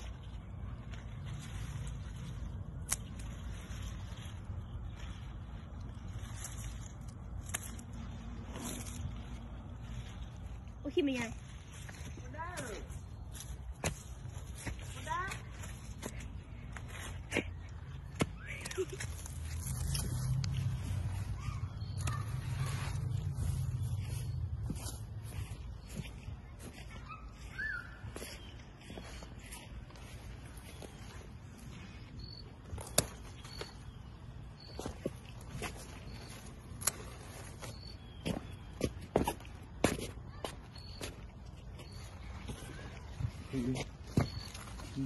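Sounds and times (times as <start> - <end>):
bird whistled call: 27.0 - 28.5.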